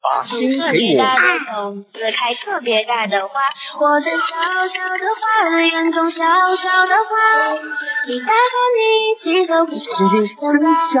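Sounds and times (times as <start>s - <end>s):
high-pitched child-like singing: 0.1s - 11.0s.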